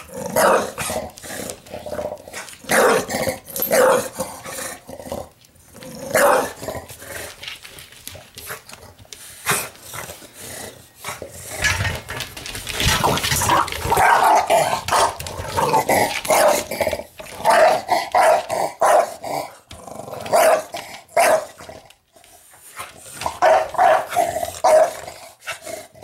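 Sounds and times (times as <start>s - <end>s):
dog growling and barking: 0.0s - 7.4s, 10.4s - 22.0s, 23.2s - 26.0s.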